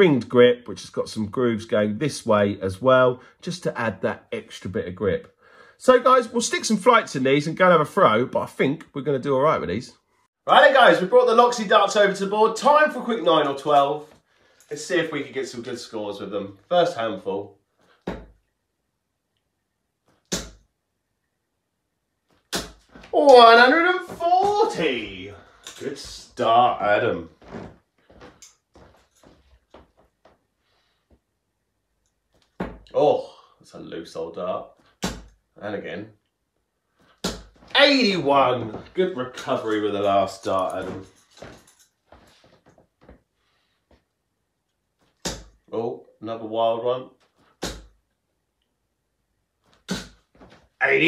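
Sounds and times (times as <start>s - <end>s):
darts thudding into dartboard: 20.3s - 20.6s, 45.2s - 45.6s.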